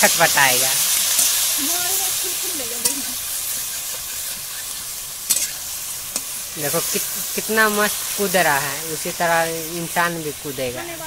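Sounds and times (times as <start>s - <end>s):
chicken sizzling in hot oil: 0.0s - 11.0s
spatula clicking on pan: 5.3s - 6.3s.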